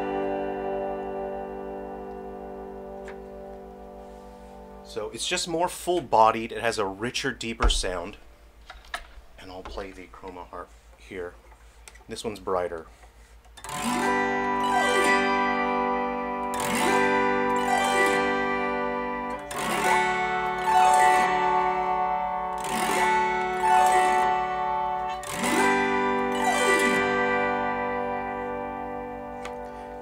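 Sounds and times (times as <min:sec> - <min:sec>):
autoharp chords strummed: 0:00.0 - 0:06.5, 0:13.6 - 0:30.0.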